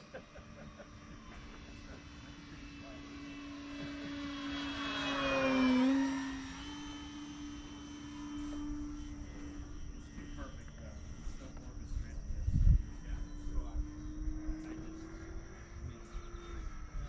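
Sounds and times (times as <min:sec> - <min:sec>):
model plane motor humming: 0:00.0 - 0:17.0.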